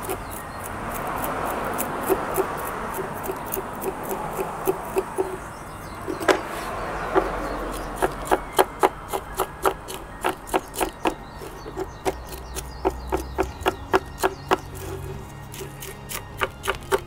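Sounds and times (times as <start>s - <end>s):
metal hook scraping soil: 0.0s - 17.0s.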